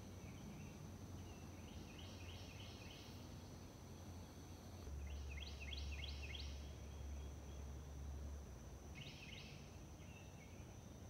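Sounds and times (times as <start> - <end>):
songbird singing rising notes: 4.9 - 7.7.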